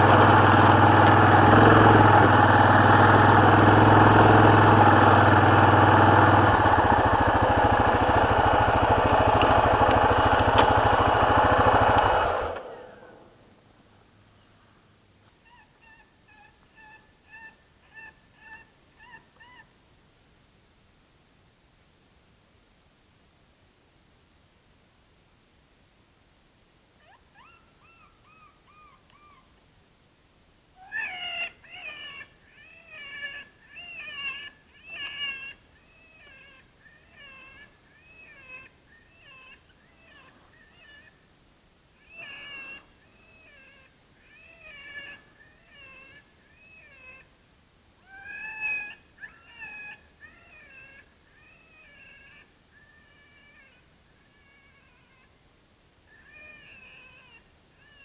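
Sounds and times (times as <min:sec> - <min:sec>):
electronic animal distress cries: 0:00.0 - 0:13.2, 0:30.8 - 0:41.1, 0:42.0 - 0:47.2, 0:48.0 - 0:55.3, 0:56.2 - 0:58.0.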